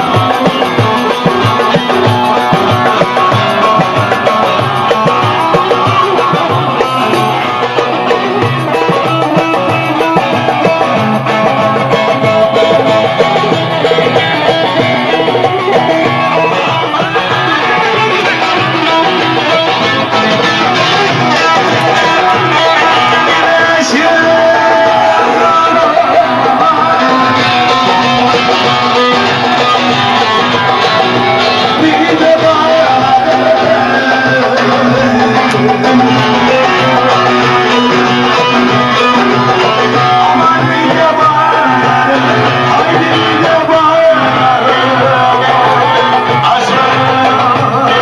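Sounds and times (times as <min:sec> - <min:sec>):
plucked strings music: 0:00.0 - 0:48.0
steady beat: 0:00.0 - 0:48.0.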